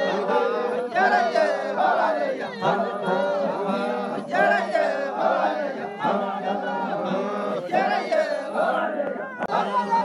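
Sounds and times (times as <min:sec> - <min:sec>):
group of voices chanting: 0:00.0 - 0:10.0.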